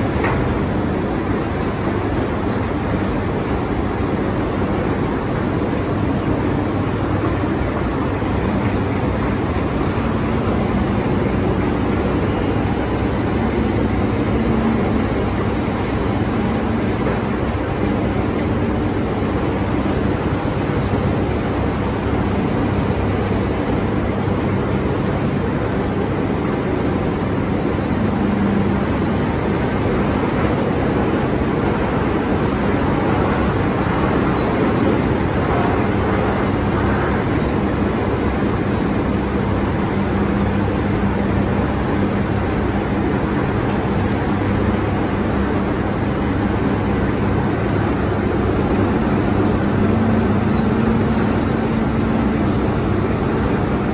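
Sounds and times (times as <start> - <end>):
machinery hum: 0.0 - 53.9.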